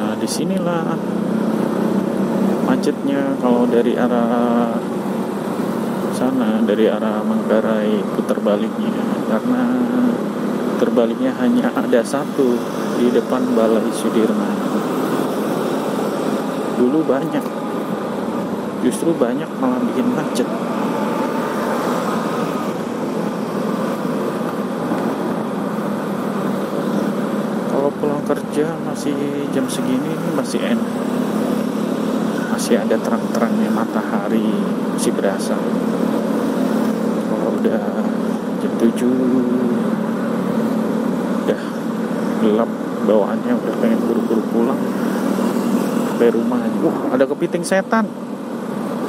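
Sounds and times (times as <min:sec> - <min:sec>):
man's voice: 0:00.0 - 0:01.0, 0:10.8 - 0:14.7, 0:27.7 - 0:30.9, 0:37.4 - 0:39.9, 0:41.5 - 0:41.8
wind and road rush: 0:00.0 - 0:49.0.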